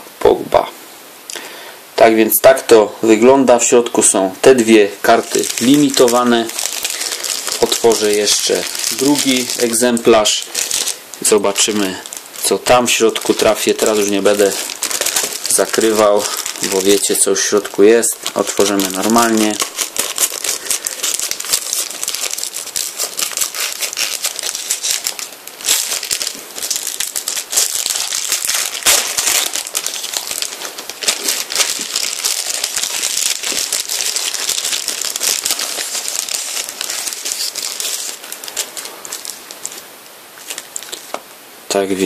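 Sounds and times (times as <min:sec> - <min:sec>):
plastic bag crinkling: 0:02.5 - 0:41.2.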